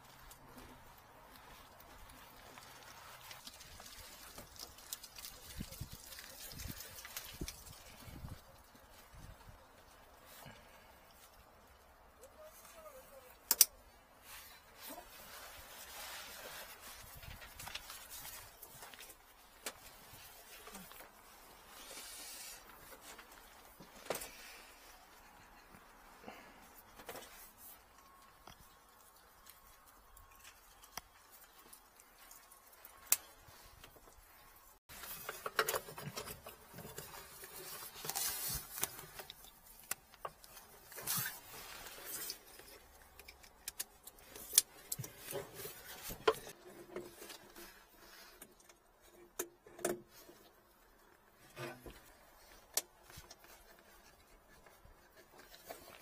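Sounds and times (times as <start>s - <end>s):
soft handling rustling: 14.0s - 49.2s, 50.0s - 56.0s.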